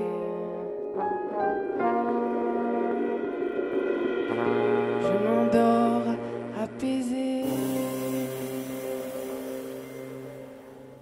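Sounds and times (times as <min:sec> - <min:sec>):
live band final chord ringing: 0:01.6 - 0:11.0.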